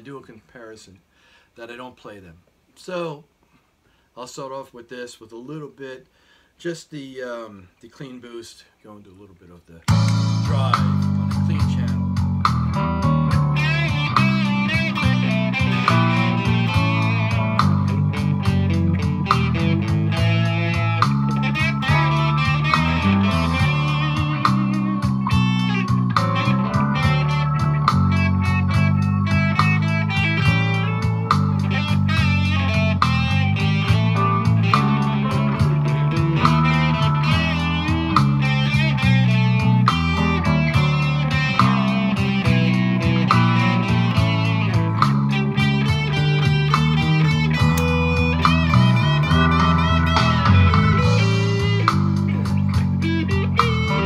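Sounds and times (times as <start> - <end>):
overdriven electric guitar: 9.9 - 54.0.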